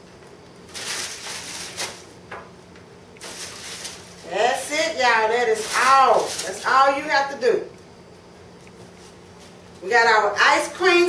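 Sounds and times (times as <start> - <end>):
crinkly rustling of tray liner: 0.7 - 2.1, 3.2 - 4.7, 5.3 - 6.8.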